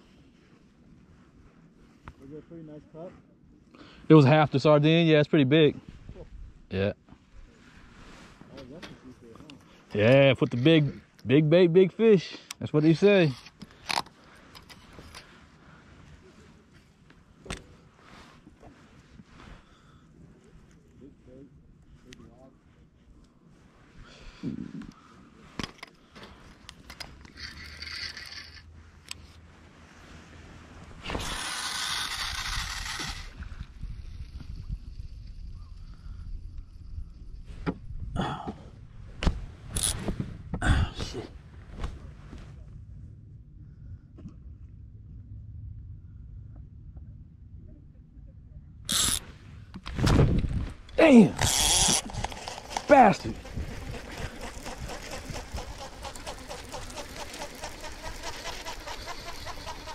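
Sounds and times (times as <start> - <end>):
fishing gear clicks and knocks: 13.3 - 15.3, 50.8 - 59.9
low rumble: 40.5 - 50.9.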